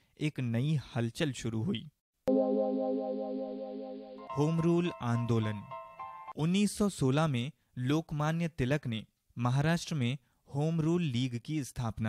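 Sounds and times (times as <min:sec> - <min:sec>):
electronic chord music sting: 0:02.3 - 0:06.4
person narrating: 0:04.2 - 0:05.8.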